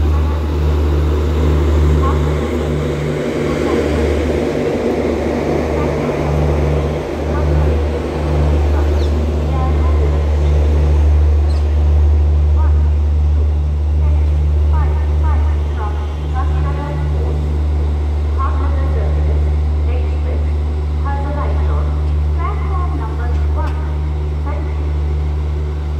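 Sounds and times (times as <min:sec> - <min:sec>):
people's voices: 0:00.0 - 0:25.1
train droning: 0:00.0 - 0:25.9.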